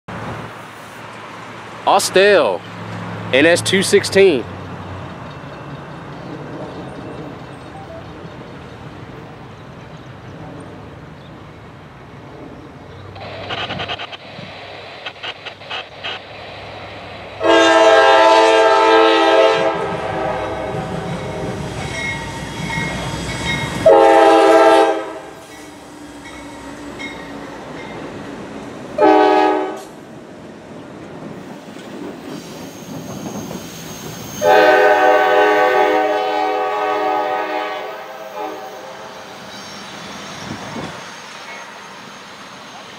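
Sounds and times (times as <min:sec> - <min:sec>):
diesel engines rumbling: 0:00.1 - 0:37.7
locomotive chime horn blasts: 0:17.4 - 0:21.5, 0:23.8 - 0:25.4, 0:29.0 - 0:29.9, 0:34.3 - 0:39.8.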